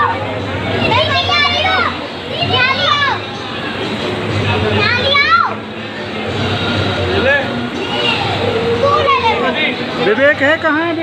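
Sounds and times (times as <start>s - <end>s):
steady background noise: 0.0s - 11.0s
children calling out: 0.8s - 3.3s, 7.8s - 9.6s.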